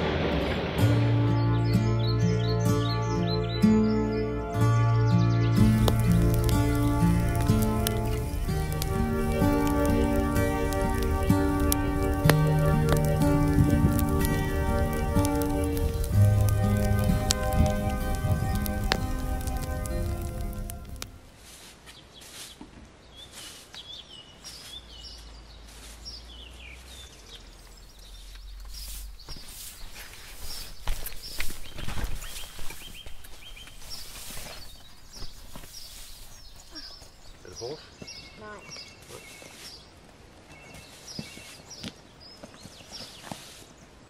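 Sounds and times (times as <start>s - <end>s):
instrumental music: 0.1s - 21.3s
birds singing: 1.2s - 21.0s, 21.9s - 44.0s
straw broom sweeping ground: 5.5s - 27.0s, 28.1s - 36.7s, 39.2s - 39.8s, 43.2s - 43.8s.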